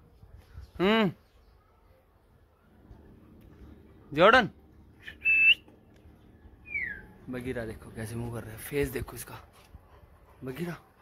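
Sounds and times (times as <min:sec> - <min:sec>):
person whistling: 0:05.0 - 0:05.7.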